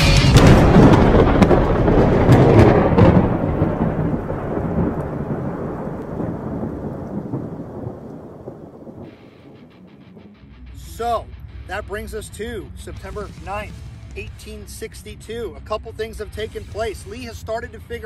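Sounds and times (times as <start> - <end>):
thunder rumbling: 0.2 - 10.6
rain patter: 0.4 - 10.2.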